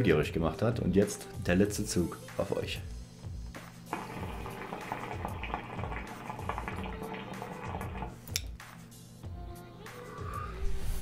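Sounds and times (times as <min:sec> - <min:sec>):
hookah water bubbling: 0:03.9 - 0:08.3.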